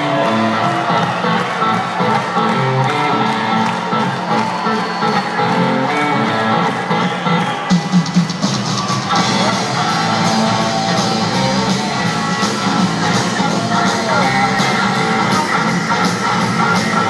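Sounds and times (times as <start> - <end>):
bass guitar: 0.0 - 7.6, 8.4 - 17.0
electric guitar: 0.0 - 7.6, 8.3 - 17.0
drums and cymbals: 6.6 - 17.0.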